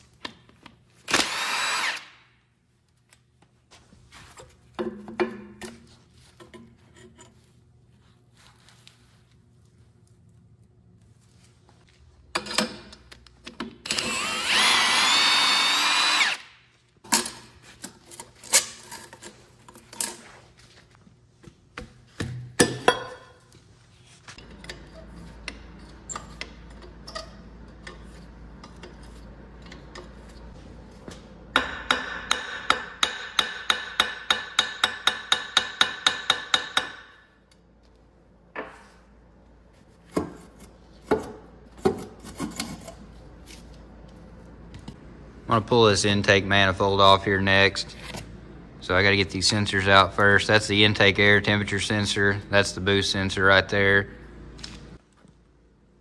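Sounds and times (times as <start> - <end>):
cordless impact wrench: 1.1 - 2.2, 13.8 - 16.6.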